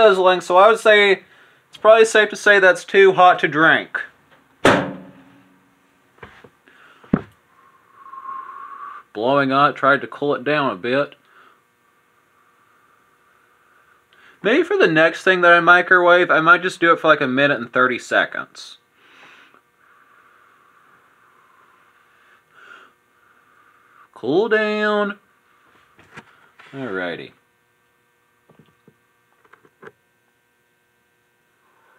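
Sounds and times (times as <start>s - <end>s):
sharp knock: 4.6s - 5.5s
person blowing on a drink: 7.5s - 9.1s.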